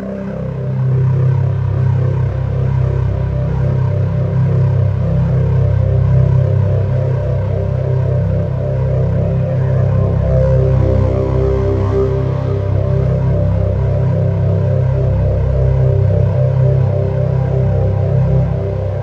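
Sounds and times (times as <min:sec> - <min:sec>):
ambient synthesizer music: 0:00.0 - 0:19.0.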